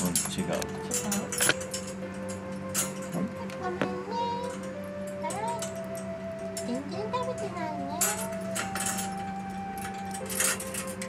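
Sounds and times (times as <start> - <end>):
metallic clinks of wire cage: 0.0 - 3.3, 4.2 - 11.0
steady background hum: 0.0 - 11.0.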